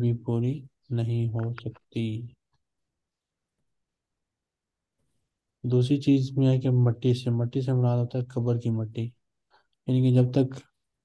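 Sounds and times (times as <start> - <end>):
man speaking: 0.0 - 2.4, 5.6 - 9.2, 9.8 - 10.8.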